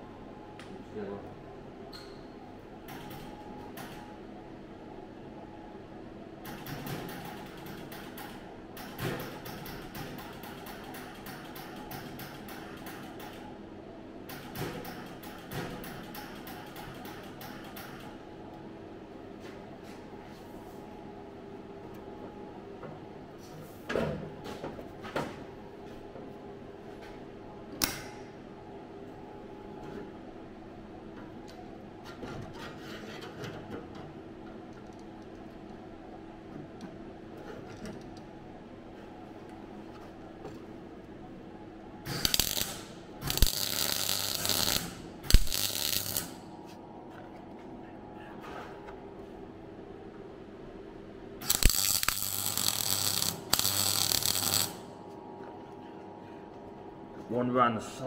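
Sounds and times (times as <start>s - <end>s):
welder crackling: 42.1s - 46.4s, 51.4s - 55.0s.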